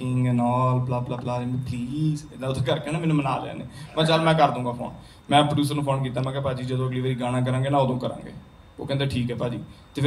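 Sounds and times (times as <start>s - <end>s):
man speaking into a microphone: 0.0s - 10.0s.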